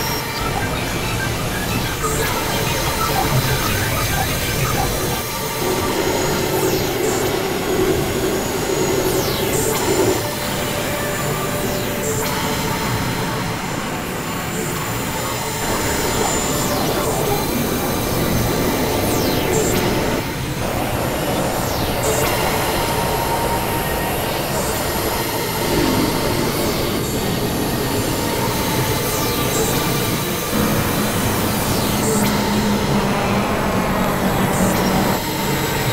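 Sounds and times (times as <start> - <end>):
electronic noise wash: 0.0 - 10.2
held drone tones: 0.0 - 35.9.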